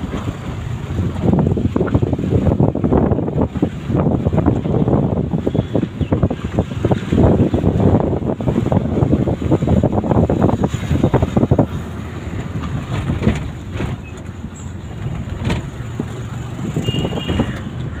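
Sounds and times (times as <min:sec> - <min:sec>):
low road noise: 0:00.0 - 0:18.0
wind buffeting microphone: 0:00.0 - 0:18.0.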